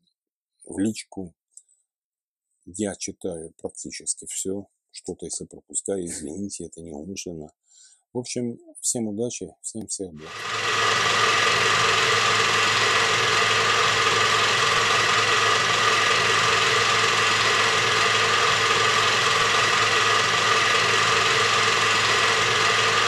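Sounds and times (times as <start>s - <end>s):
steady mechanical whirring hum: 10.3s - 23.0s.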